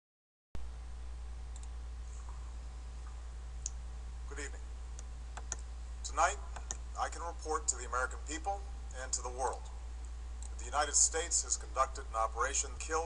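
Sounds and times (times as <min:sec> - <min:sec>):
low hum: 0:00.6 - 0:13.0
sharp clicks: 0:05.0 - 0:05.7.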